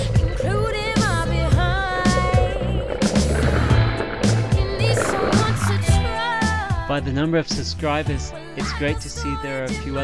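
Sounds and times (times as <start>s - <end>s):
pop music with vocal: 0.0s - 10.0s.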